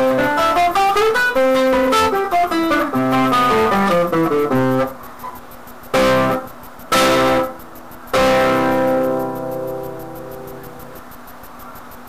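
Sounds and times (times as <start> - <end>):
classical guitar chord ringing: 0.0 - 5.0, 6.0 - 11.0.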